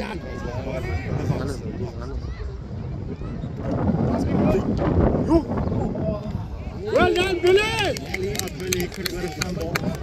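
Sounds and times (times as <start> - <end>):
spectators talking and calling out: 0.0 - 10.0.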